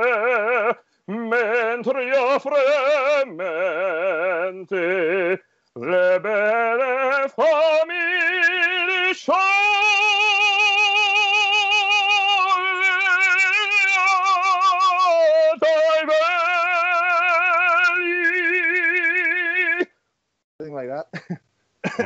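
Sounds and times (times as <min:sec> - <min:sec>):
man singing opera: 0:00.0 - 0:19.9.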